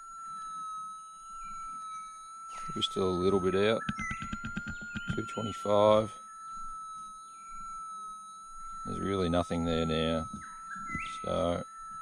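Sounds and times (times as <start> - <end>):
metal detector high tone: 0.0 - 12.0.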